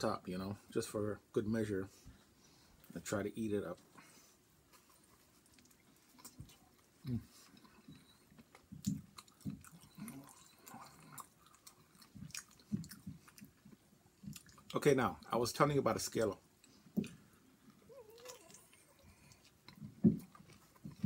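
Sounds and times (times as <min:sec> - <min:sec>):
man chewing food: 0:02.1 - 0:03.0, 0:03.8 - 0:15.3, 0:16.4 - 0:21.0.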